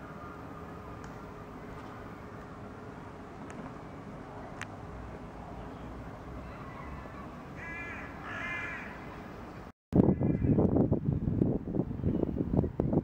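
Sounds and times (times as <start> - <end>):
low street hum: 0.0 - 13.0
bird cawing: 6.4 - 9.1, 10.1 - 10.6
wind buffeting microphone: 9.9 - 13.0.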